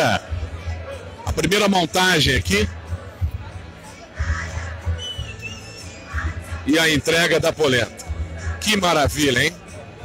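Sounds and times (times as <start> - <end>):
faint background music: 0.0 - 10.0
high whistle-like tone: 4.9 - 6.1.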